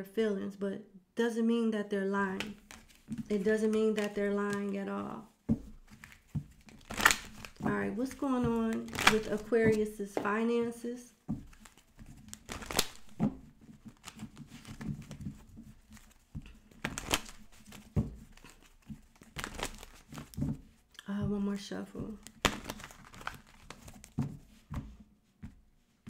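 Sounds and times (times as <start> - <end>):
cards being shuffled: 2.3 - 21.4, 22.1 - 25.6
card snap: 6.8 - 9.8, 12.5 - 13.0, 22.4 - 23.3.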